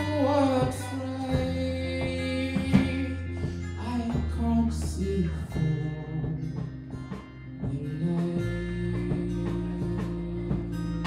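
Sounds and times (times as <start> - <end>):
guitar notes: 0.0 - 11.0
sustained bass line: 0.0 - 11.0.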